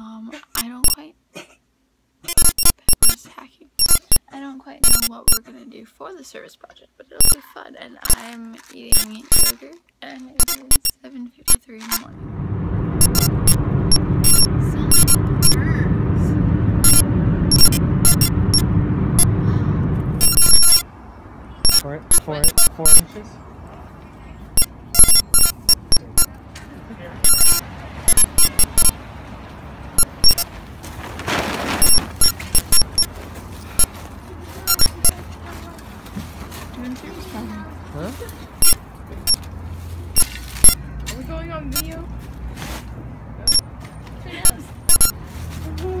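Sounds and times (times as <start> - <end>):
voices: 3.1 - 30.4, 33.8 - 39.6, 40.7 - 42.2, 43.0 - 46.0.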